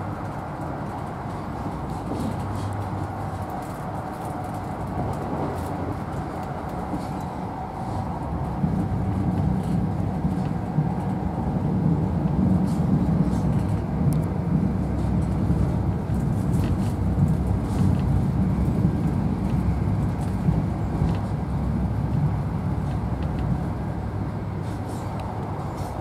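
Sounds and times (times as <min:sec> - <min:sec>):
train wheels rumbling on track: 0:00.0 - 0:26.0.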